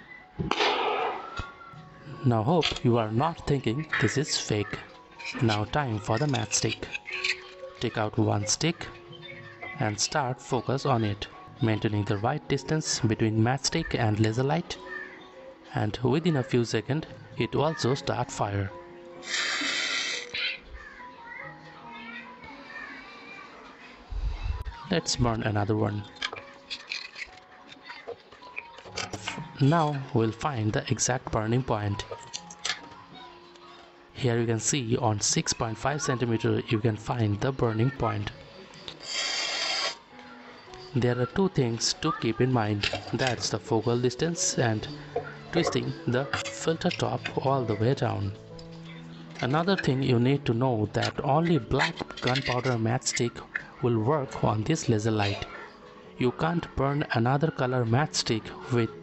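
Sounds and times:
balloon bursting: 0:00.4 - 0:01.4.

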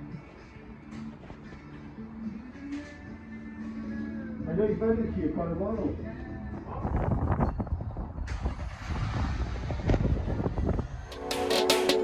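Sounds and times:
car engine low rumble: 0:07.1 - 0:11.1.

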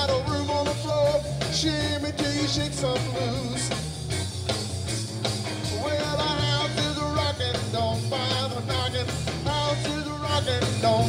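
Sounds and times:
blues rock band playing: 0:00.0 - 0:11.0
electric guitar lead with bent notes: 0:00.0 - 0:11.0.

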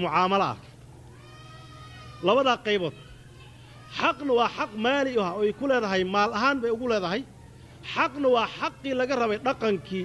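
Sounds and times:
man speaking into a microphone: 0:00.0 - 0:00.7, 0:02.2 - 0:03.0, 0:03.9 - 0:10.0.

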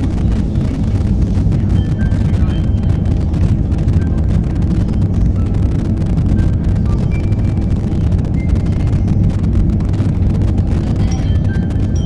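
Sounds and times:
low rumbling noise: 0:00.0 - 0:12.0.

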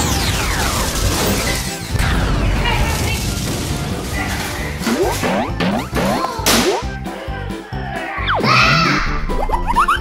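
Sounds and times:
children's background music: 0:04.1 - 0:10.0.

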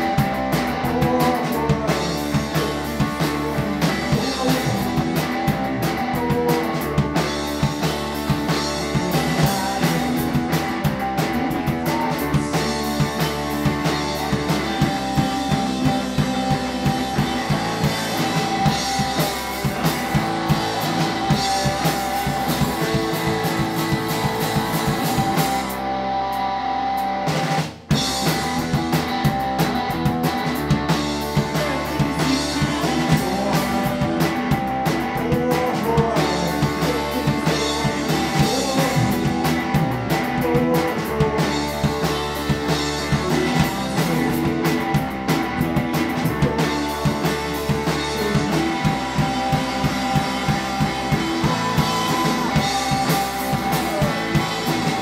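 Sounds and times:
rock band playing live: 0:00.0 - 0:55.0.

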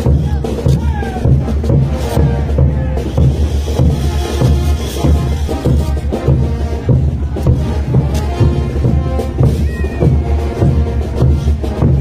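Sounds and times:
parade band music: 0:00.0 - 0:12.0
steady drum beat: 0:00.0 - 0:12.0.

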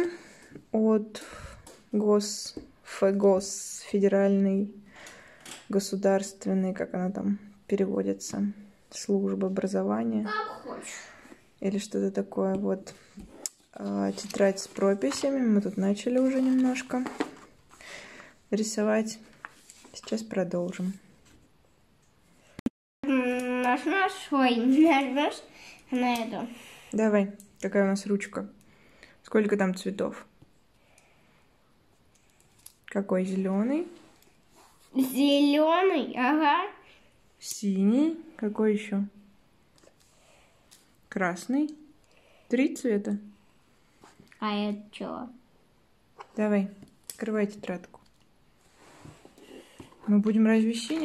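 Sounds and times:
high-pitched voice talking: 0:10.2 - 0:10.9
paper rustling: 0:13.6 - 0:17.8.

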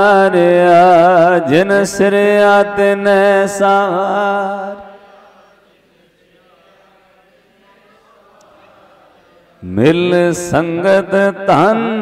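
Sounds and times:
faint chanting voices: 0:00.0 - 0:12.0.

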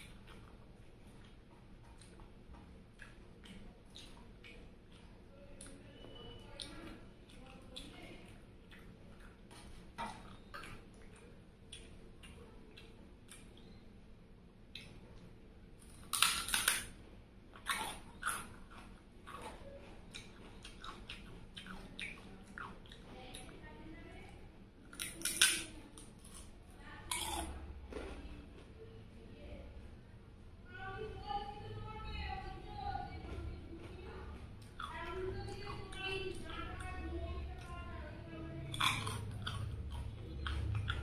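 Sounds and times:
crunchy chewing of crisp food: 0:00.0 - 0:14.0, 0:14.6 - 0:28.8, 0:33.1 - 0:41.0
fried snack crackling: 0:15.8 - 0:17.0, 0:24.9 - 0:27.8, 0:33.8 - 0:41.0.

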